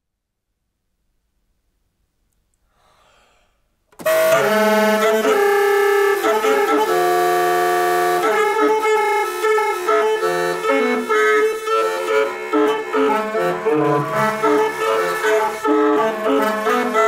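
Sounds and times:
clarinet: 0:04.0 - 0:17.0
saxophone: 0:04.0 - 0:17.0.

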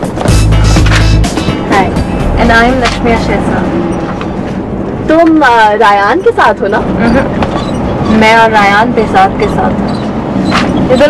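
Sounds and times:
bus engine and road drone: 0:00.0 - 0:11.0
voices: 0:01.7 - 0:04.2, 0:05.0 - 0:09.9.

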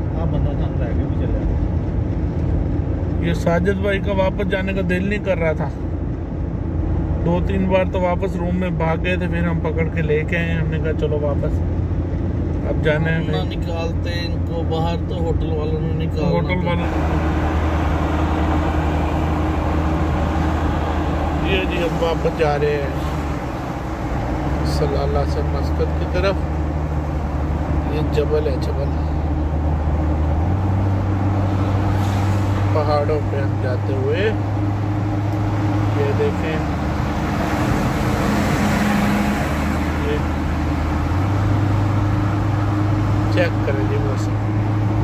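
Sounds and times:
engine and tyre drone: 0:00.0 - 0:45.0.

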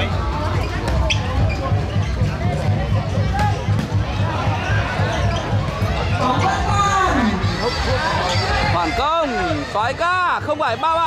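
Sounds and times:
background music with low beat: 0:00.0 - 0:08.8
spectator chatter: 0:00.0 - 0:11.0.

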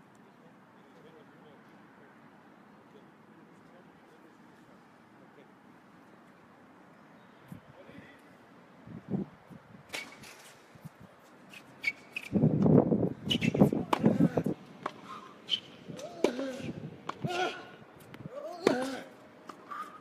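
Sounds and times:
tennis balls struck by racquets: 0:12.6 - 0:17.6, 0:18.4 - 0:20.0
nearby voices: 0:13.6 - 0:15.3, 0:15.9 - 0:19.2.

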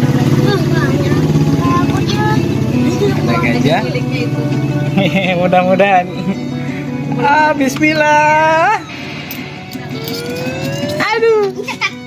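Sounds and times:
rising electronic tone: 0:08.3 - 0:11.4
claw machine electronic pulsing: 0:08.8 - 0:11.3.

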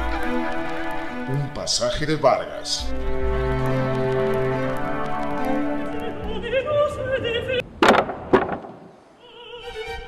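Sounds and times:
operatic music: 0:00.0 - 0:07.6
loud thuds: 0:07.6 - 0:09.0.

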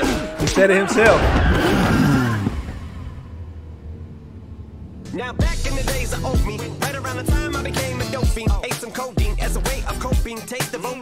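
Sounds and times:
sports car engine revving: 0:01.5 - 0:10.2.

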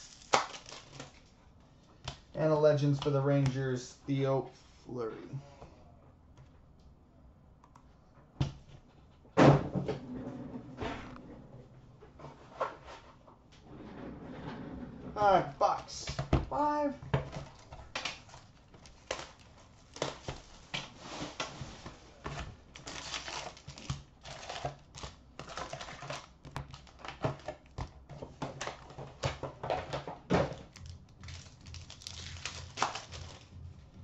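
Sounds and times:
card packs crinkling and tearing: 0:00.0 - 0:01.3, 0:15.6 - 0:33.7.

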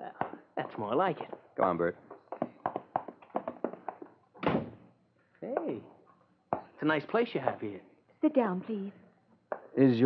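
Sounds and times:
footsteps light taps: 0:02.1 - 0:04.2.

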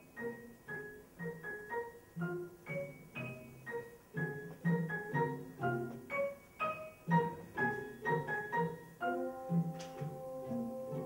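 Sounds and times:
grand piano chords: 0:00.0 - 0:11.0.

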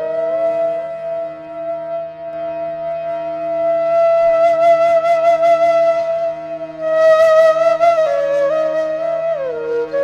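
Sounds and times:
flute holding a long note: 0:00.0 - 0:10.0.

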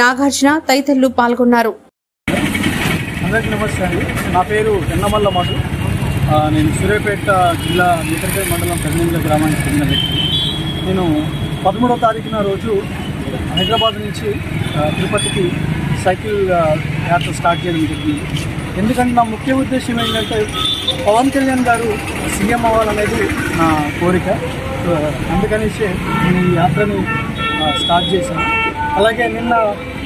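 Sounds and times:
road traffic noise: 0:02.3 - 0:30.0
man talking: 0:03.2 - 0:10.1, 0:10.9 - 0:29.9.

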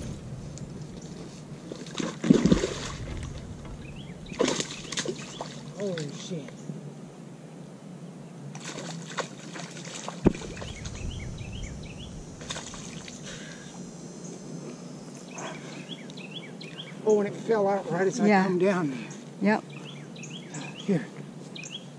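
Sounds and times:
fish splashing in water: 0:01.6 - 0:06.0, 0:08.6 - 0:13.6.

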